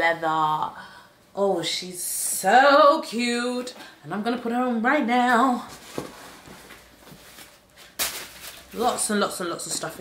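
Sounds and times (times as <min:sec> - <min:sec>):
rustling of packing stuffing: 0:05.4 - 0:10.0.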